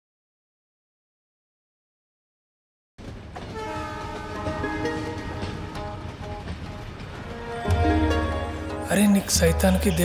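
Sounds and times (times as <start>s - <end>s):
train rumbling over a bridge: 3.0s - 10.0s
train horn: 3.4s - 8.8s.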